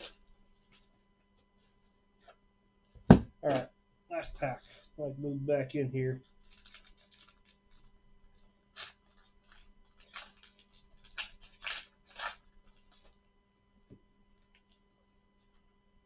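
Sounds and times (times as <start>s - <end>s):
plastic wrapper tearing and crinkling: 4.2s - 4.9s, 6.2s - 13.2s.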